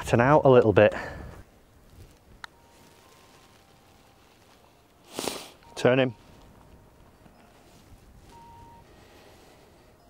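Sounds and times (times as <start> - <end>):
short faint steady tone: 5.6 - 10.0.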